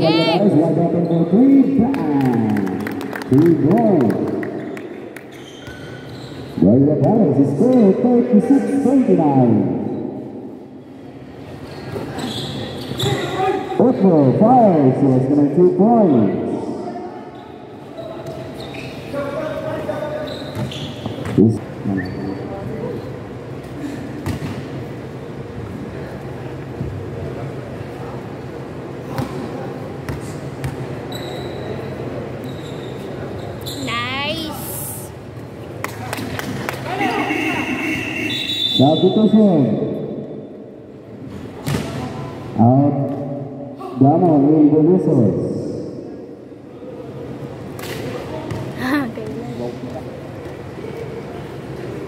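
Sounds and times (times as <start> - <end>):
gym background noise: 0.0 - 52.0
murmur of voices: 42.0 - 52.0.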